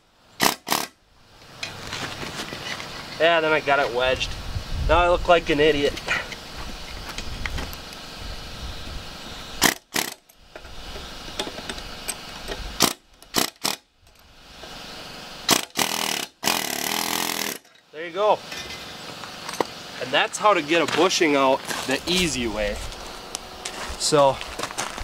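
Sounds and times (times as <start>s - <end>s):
pneumatic air hammer on steel: 0.4s - 1.0s, 9.6s - 10.7s, 12.8s - 13.8s, 15.4s - 17.7s.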